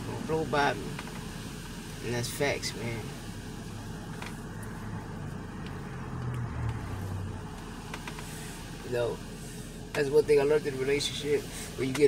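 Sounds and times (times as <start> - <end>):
vehicle rumble inside car: 0.0 - 12.0.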